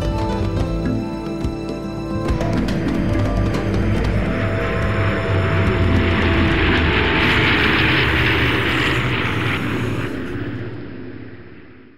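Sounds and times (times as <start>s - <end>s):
propeller wash rushing: 0.0s - 11.7s
light aircraft engine drone: 0.0s - 11.9s.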